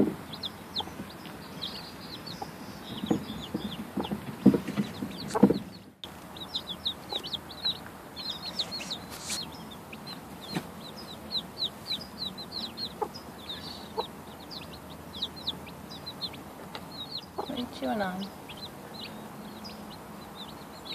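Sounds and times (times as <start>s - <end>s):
chicks peeping: 0.0s - 20.9s.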